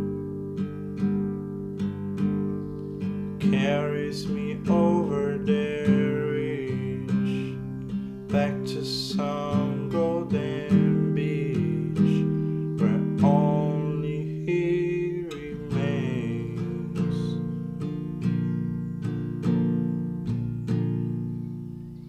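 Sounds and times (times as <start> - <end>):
acoustic guitar chords strummed: 0.0 - 22.0.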